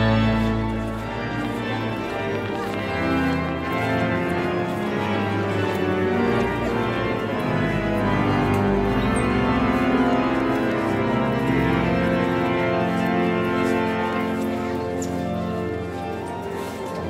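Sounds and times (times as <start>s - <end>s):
pipe organ playing chords: 0.0s - 17.0s.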